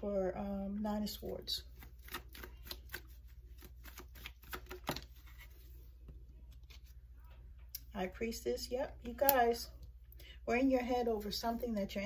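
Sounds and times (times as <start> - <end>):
cards being shuffled: 1.7 - 7.0.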